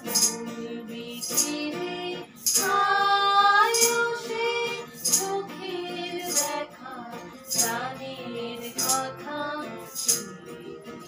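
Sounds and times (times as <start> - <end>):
hand shaker: 0.0 - 0.5, 1.2 - 1.7, 2.3 - 3.0, 3.6 - 5.5, 6.2 - 6.6, 7.4 - 7.8, 8.6 - 9.2, 9.8 - 10.5
acoustic guitar: 0.0 - 11.0
women singing together: 0.0 - 11.0.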